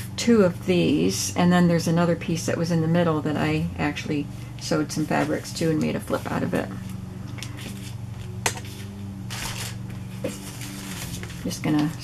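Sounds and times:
steady low hum: 0:00.0 - 0:12.0
fabric rustling: 0:08.6 - 0:12.0.

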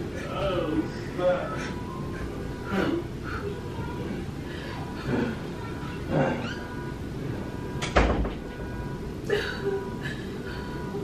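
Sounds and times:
faint steady tone: 0:00.0 - 0:11.0.

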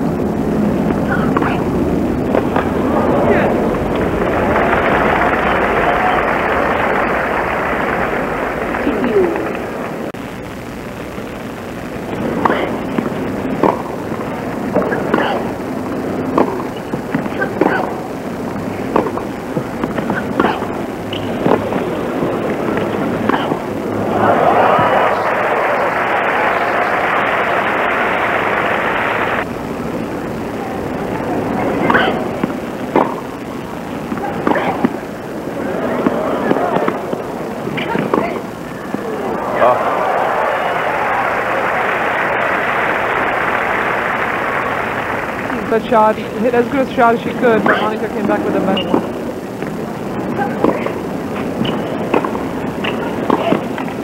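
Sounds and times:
crowd applauding: 0:02.2 - 0:10.2, 0:20.5 - 0:29.5, 0:38.7 - 0:48.7
racquet striking ball: 0:12.4 - 0:14.1, 0:14.7 - 0:15.5, 0:16.2 - 0:18.0, 0:18.8 - 0:23.7, 0:31.8 - 0:33.4, 0:34.1 - 0:35.1, 0:50.6 - 0:54.0.

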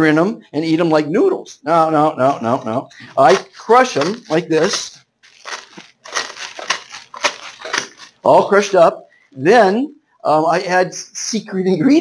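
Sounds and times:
dry noodles crunching in plastic: 0:03.1 - 0:08.3.

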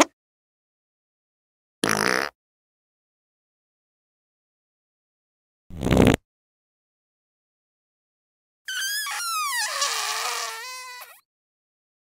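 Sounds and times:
fart sound effect sliding down: 0:05.7 - 0:06.2.

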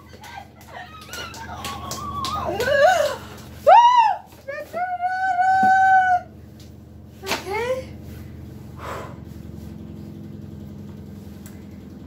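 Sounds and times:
steady low hum: 0:00.0 - 0:12.0
short breath out: 0:08.8 - 0:09.3.

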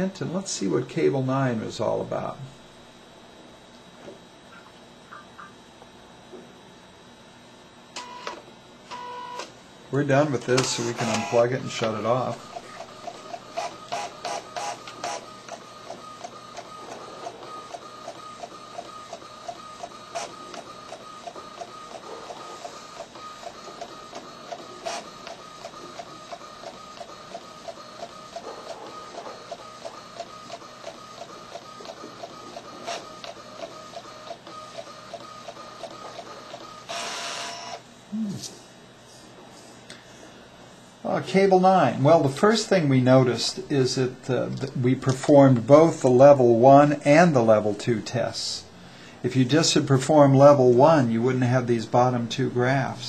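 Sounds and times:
printer motor whine: 0:00.0 - 0:38.3.

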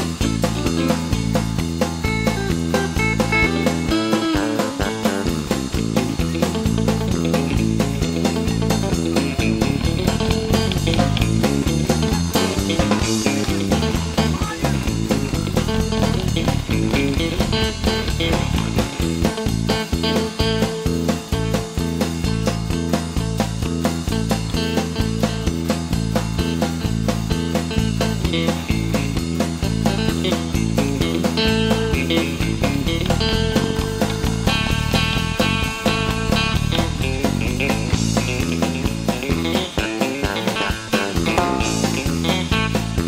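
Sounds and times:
bass guitar: 0:00.0 - 0:43.0
drums steady beat: 0:00.0 - 0:43.0
lead guitar: 0:00.0 - 0:43.0.

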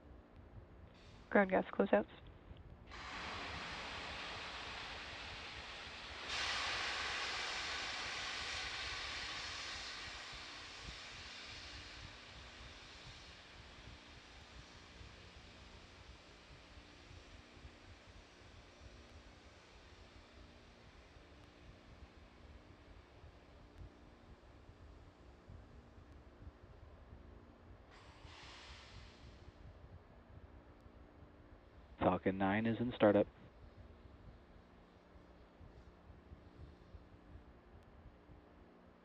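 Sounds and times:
gas venting hiss: 0:02.9 - 0:37.5.

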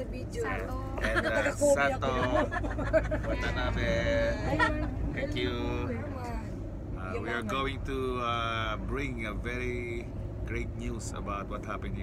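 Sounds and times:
bus engine rumble: 0:00.0 - 0:12.0
people laughing: 0:01.0 - 0:05.0.

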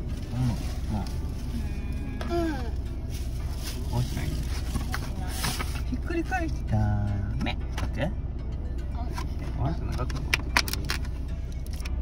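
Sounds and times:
van engine idling: 0:00.0 - 0:12.0.

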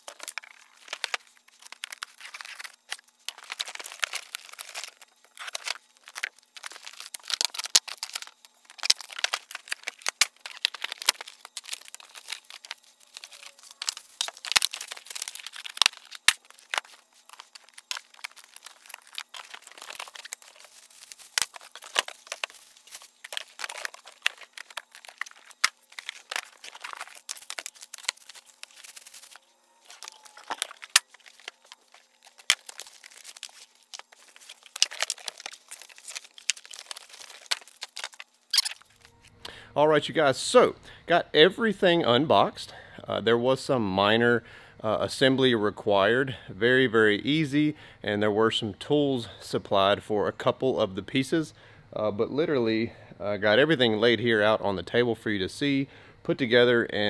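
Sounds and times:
cardboard and plastic crinkling: 0:00.0 - 0:39.3.

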